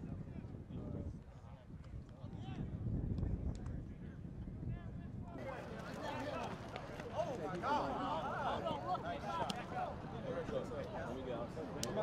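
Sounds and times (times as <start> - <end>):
crowd talking and calling out: 5.4 - 12.0.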